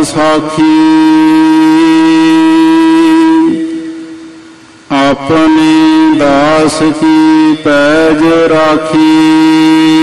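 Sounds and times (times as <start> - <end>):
devotional singing: 0.0 - 4.0, 4.9 - 10.0.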